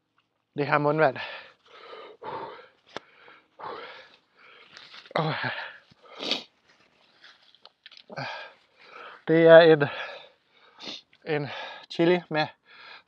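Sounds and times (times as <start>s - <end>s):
man breathing heavily and wheezing: 1.2s - 6.6s, 8.0s - 11.9s, 12.6s - 13.0s
nose blowing into tissue: 6.1s - 6.5s.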